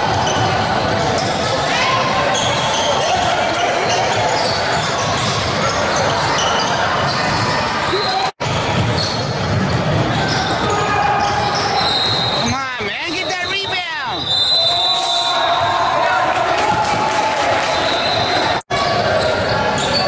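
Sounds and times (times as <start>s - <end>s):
voices of players and spectators: 0.0s - 20.0s
sneaker squeaks: 0.2s - 15.7s, 17.7s - 20.0s.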